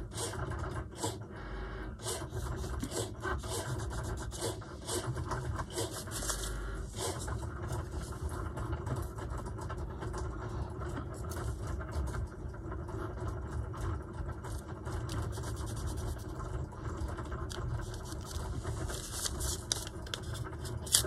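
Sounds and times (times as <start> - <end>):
paper rustling under hands: 5.6 - 8.4, 14.4 - 21.0.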